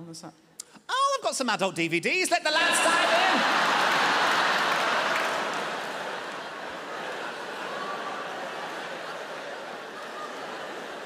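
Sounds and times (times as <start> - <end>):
audience applauding: 2.6 - 11.0
audience laughing: 2.6 - 11.0.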